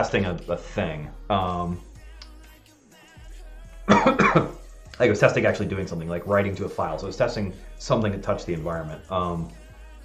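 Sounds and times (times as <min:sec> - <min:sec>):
faint background music: 0:00.0 - 0:10.0
man coughing: 0:03.9 - 0:04.6.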